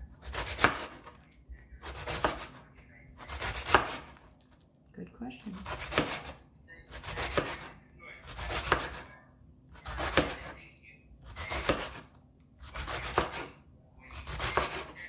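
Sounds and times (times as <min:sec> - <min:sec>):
knife cutting crisp vegetables: 0:00.0 - 0:04.4, 0:05.4 - 0:09.1, 0:09.7 - 0:10.6, 0:11.2 - 0:15.0.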